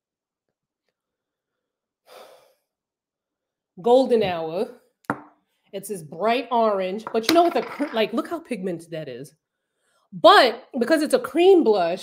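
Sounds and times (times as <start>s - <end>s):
woman speaking: 3.8s - 4.8s, 5.8s - 9.3s, 10.2s - 12.0s.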